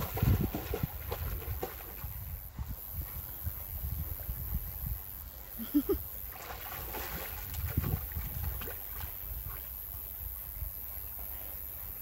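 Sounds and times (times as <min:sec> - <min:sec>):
dog splashing in water: 0:00.0 - 0:02.2, 0:06.3 - 0:09.2
wind rumble on microphone: 0:00.0 - 0:12.0.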